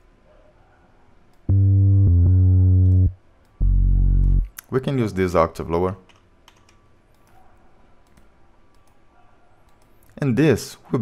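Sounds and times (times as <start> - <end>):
low synth bass notes: 1.5 - 4.5.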